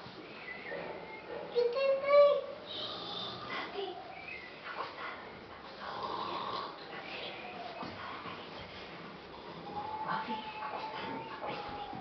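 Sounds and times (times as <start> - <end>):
children pretend snoring: 2.6 - 4.1, 5.8 - 6.8.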